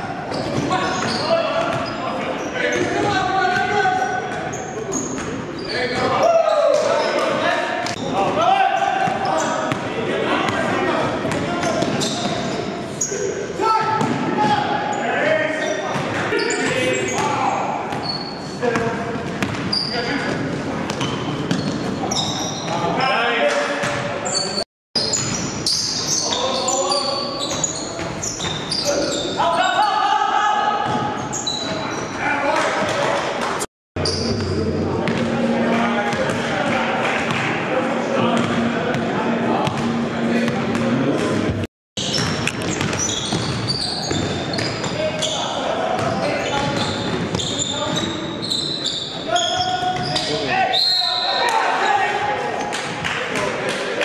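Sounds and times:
sneakers squeaking: 0.2s - 23.1s, 23.8s - 30.0s, 30.7s - 33.0s, 34.0s - 52.0s
players calling out: 0.3s - 23.2s.

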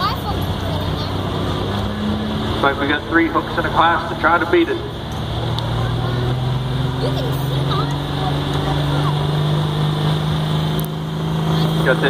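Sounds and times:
diesel pickup engine at high revs: 0.0s - 12.0s.

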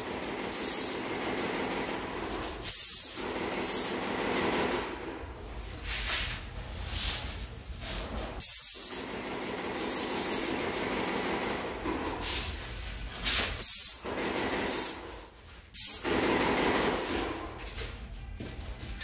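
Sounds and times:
paint sprayer hissing: 0.5s - 1.0s, 8.4s - 9.1s, 9.8s - 10.6s.

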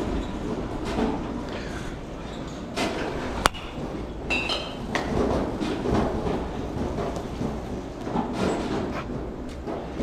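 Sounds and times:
steady rumbling background noise: 0.0s - 10.0s.

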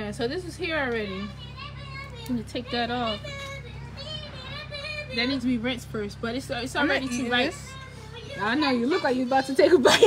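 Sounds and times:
low background hum: 0.0s - 10.0s
child talking: 0.6s - 10.0s.

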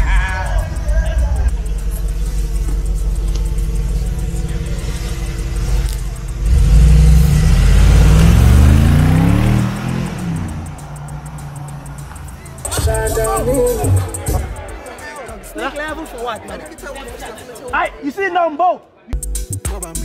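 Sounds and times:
car engine accelerating: 0.7s - 14.4s.

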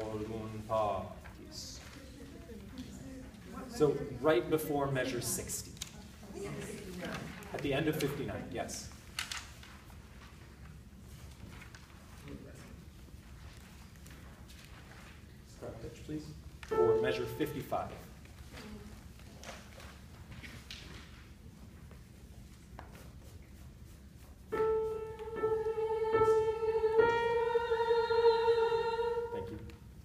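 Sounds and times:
soft hiss: 0.0s - 30.0s
piano note ringing: 16.7s - 17.7s.

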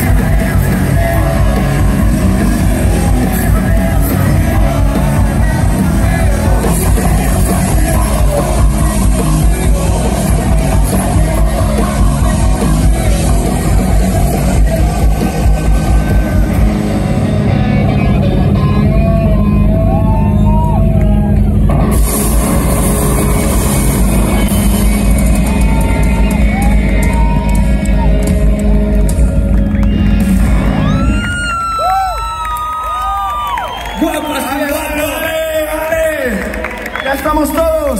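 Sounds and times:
rock band playing live: 0.0s - 32.5s
crowd cheering and whistling: 0.0s - 37.9s.

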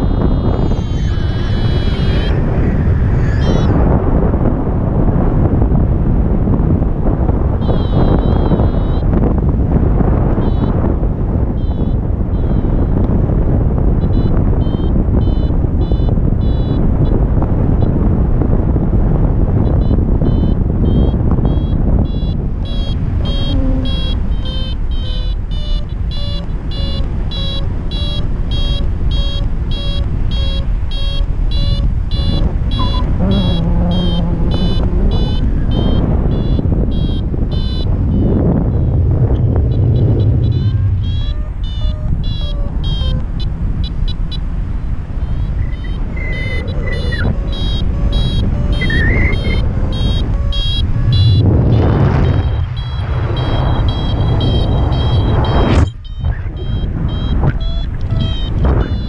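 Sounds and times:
variometer beeping: 0.0s - 59.0s
wind rushing over microphone: 0.0s - 59.0s.

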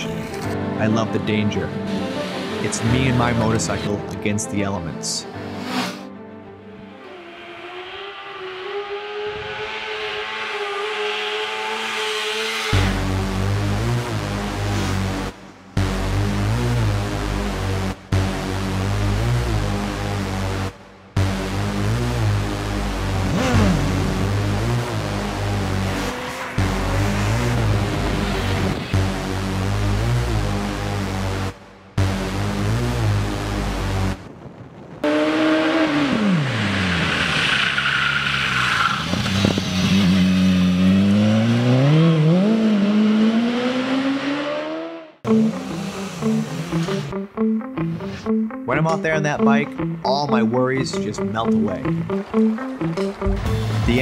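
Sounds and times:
motorcycle engine revving: 1.8s - 3.8s, 5.5s - 6.1s, 7.0s - 34.3s, 35.0s - 47.2s
music with a steady beat: 12.8s - 28.1s, 51.0s - 54.0s.

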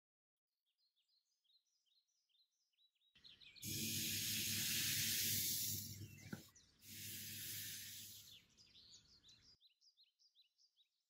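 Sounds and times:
faint high chirps: 3.6s - 9.5s.

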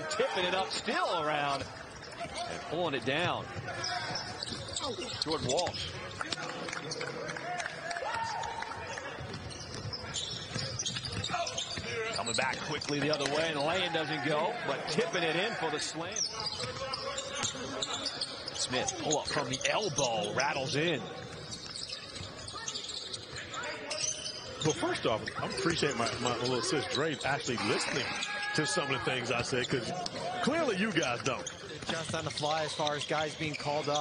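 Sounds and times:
voices on the court: 0.0s - 34.0s.

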